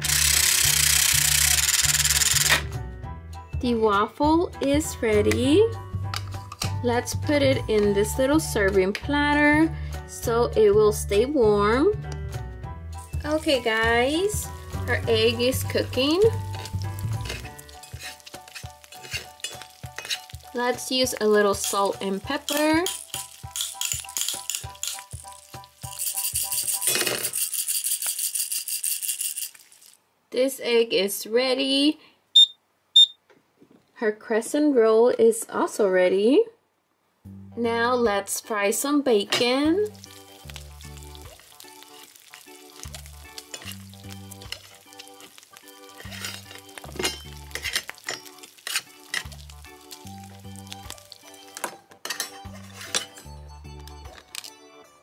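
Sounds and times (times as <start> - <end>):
plastic toy shakers rattling: 0.0 - 2.6, 21.7 - 30.0
background music: 0.0 - 27.6, 37.2 - 55.0
frying sizzle sound effect: 13.0 - 27.6, 39.6 - 51.7
toy spatula clicking on metal pan: 22.4 - 25.2.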